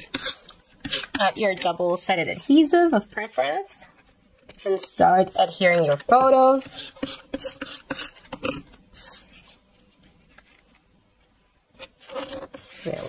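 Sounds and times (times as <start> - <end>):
paper clicks and rubbing scrapes: 11.8 - 13.0.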